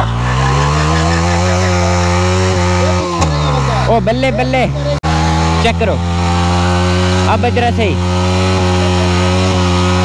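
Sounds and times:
motorcycle engine at high revs: 0:00.0 - 0:10.0
rear tyre spinning: 0:00.0 - 0:10.0.

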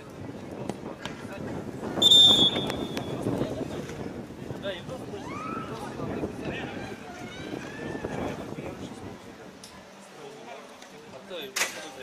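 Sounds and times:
referee's whistle blast: 0:02.0 - 0:03.1.

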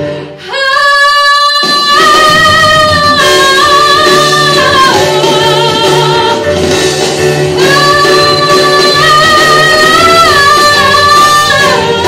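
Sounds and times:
instrumental accompaniment: 0:00.0 - 0:12.0
woman singing pop ballad: 0:00.4 - 0:06.7, 0:07.5 - 0:12.0.

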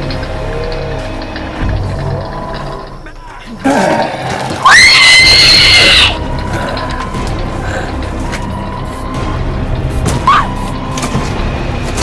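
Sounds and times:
high-pitched scream: 0:04.6 - 0:06.2.

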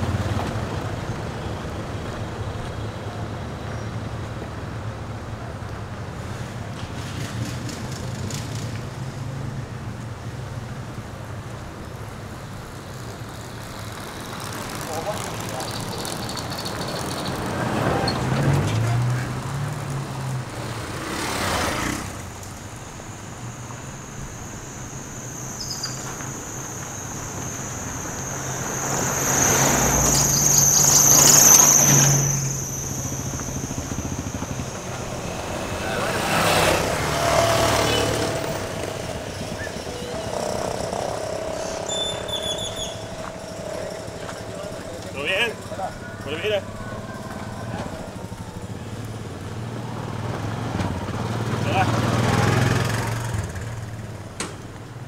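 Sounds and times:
cars passing on road: 0:00.0 - 0:55.0
steady high whine: 0:19.4 - 0:55.0.

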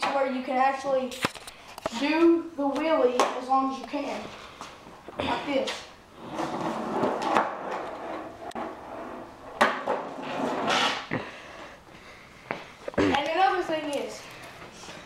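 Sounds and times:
skateboard wheels rolling: 0:06.2 - 0:11.1.

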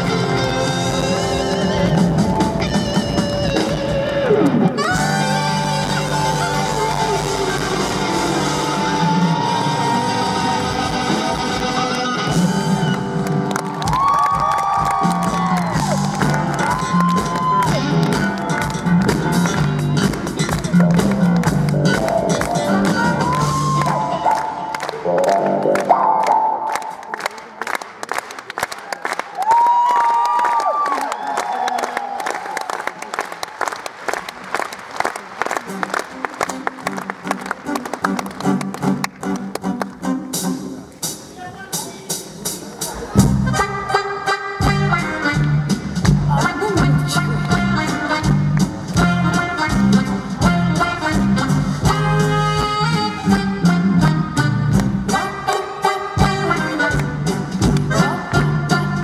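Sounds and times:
live band with saxophone and trumpet: 0:00.0 - 0:27.8, 0:34.1 - 0:59.0
audience applauding and cheering: 0:00.0 - 0:40.4
people whooping: 0:08.9 - 0:11.0, 0:13.7 - 0:18.0, 0:22.9 - 0:24.4, 0:28.8 - 0:33.3.

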